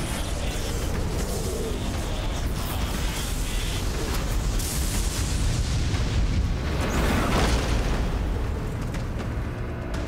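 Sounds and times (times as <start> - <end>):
deep rumble of explosions: 0.0 - 10.0.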